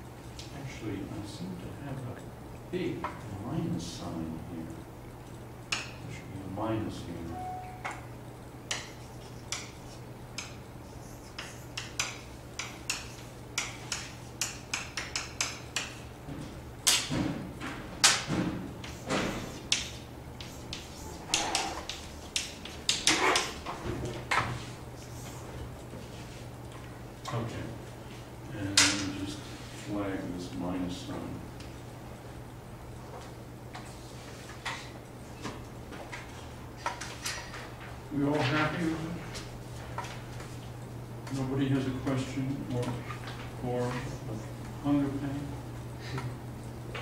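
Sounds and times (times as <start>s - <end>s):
low room hum: 0.0s - 47.0s
chalk tapping and scraping: 8.7s - 16.1s, 18.8s - 23.6s.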